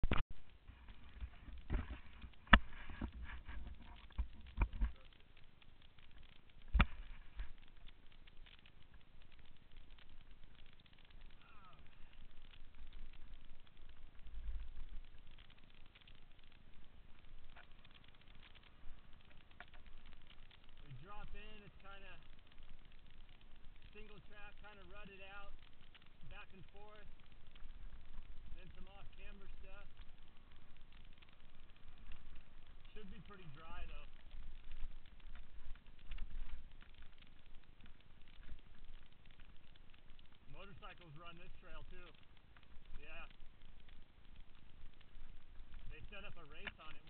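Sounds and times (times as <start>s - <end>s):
person talking: 23.9s - 25.5s, 32.9s - 34.1s.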